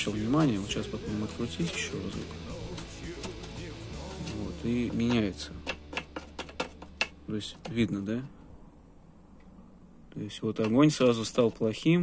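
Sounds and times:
quiet background music: 0.0s - 8.4s.

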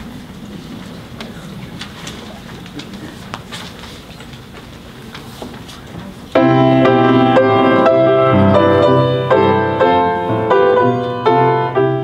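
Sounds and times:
murmur of voices: 0.0s - 10.5s.

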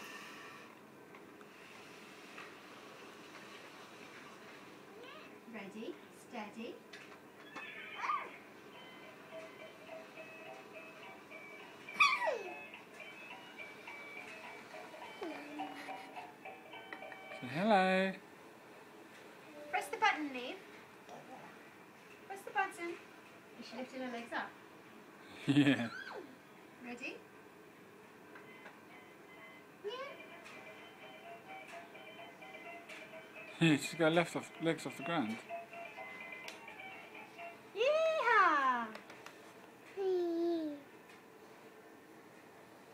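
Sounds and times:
toddler squealing: 7.7s - 8.4s, 12.0s - 12.6s, 25.9s - 26.3s
electronic toy melody: 8.7s - 17.6s, 29.0s - 37.7s.

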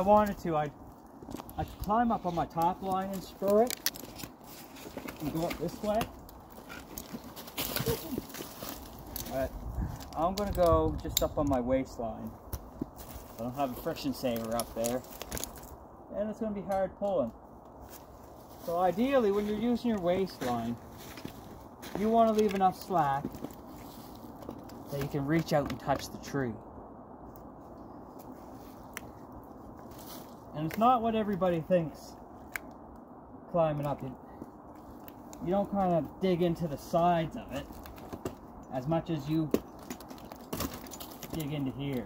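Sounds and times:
faint background noise: 0.0s - 42.0s
climbing spurs scraping bark: 1.1s - 9.4s.

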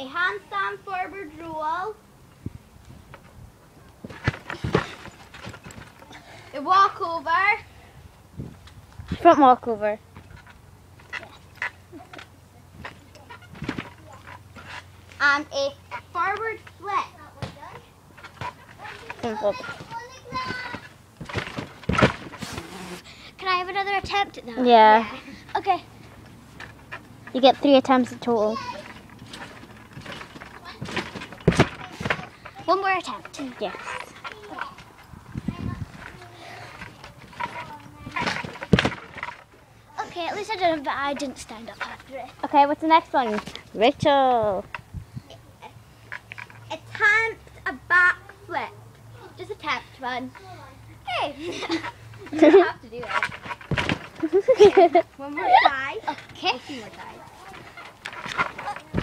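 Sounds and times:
thumps on trampoline mat: 4.0s - 5.9s, 13.4s - 14.0s, 17.4s - 23.0s, 28.8s - 32.7s, 36.7s - 39.3s, 53.0s - 54.8s, 58.2s - 59.0s
trampoline springs squeaking: 4.0s - 7.8s, 8.4s - 59.0s.

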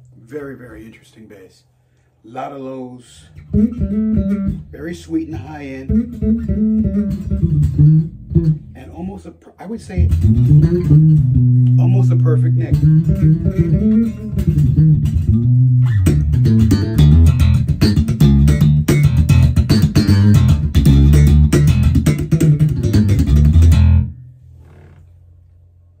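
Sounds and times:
electric bass plucked notes: 3.3s - 9.2s, 9.8s - 25.4s.

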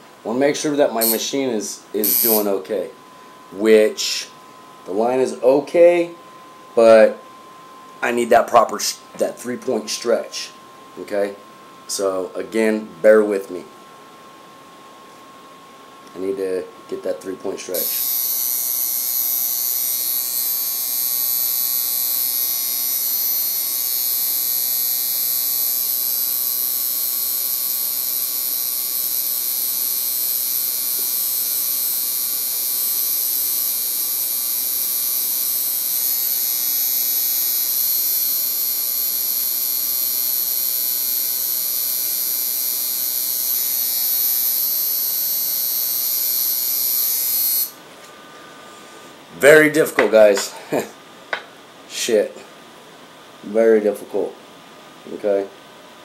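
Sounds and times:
tattoo machine buzzing: 1.0s - 1.4s, 2.0s - 2.6s, 17.7s - 47.8s.

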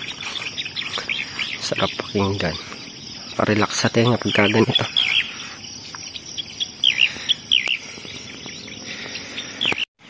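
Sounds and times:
crickets droning: 0.0s - 9.9s
songbirds chirping: 0.0s - 10.0s.

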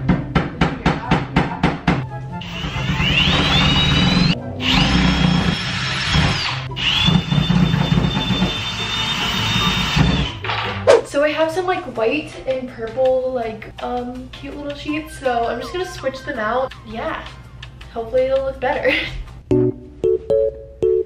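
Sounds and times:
cordless drill whining: 2.4s - 10.3s
background music with beat: 12.8s - 18.0s, 19.3s - 21.0s.

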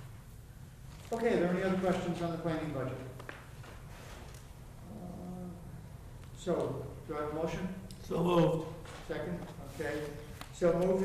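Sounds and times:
low room hum: 0.0s - 11.0s
faint voice murmuring: 4.8s - 5.8s.

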